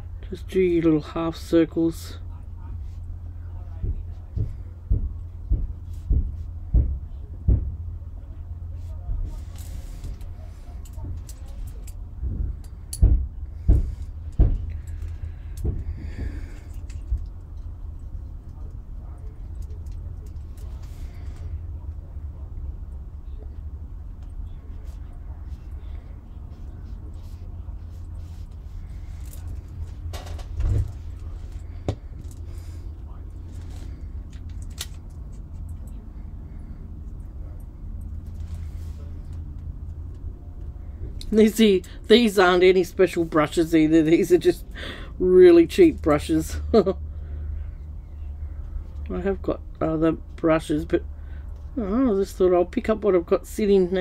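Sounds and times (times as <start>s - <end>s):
steady low hum: 0.0s - 54.0s.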